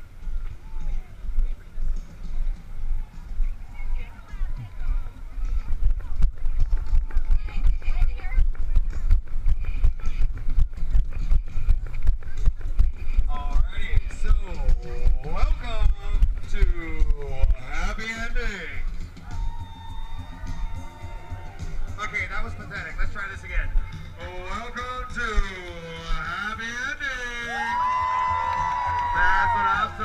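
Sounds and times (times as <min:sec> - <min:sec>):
footsteps walking and jogging: 0:00.0 - 0:18.0.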